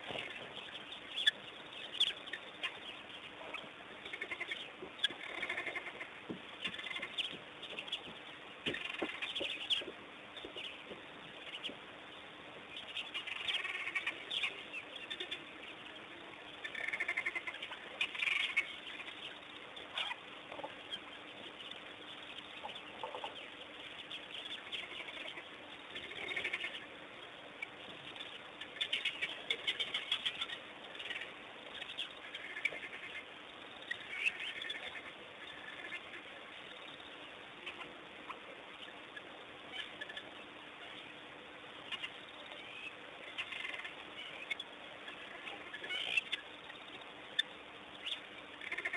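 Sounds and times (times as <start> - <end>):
faint steady hiss: 0.0 - 48.9
high-pitched animal chirping: 41.9 - 48.9.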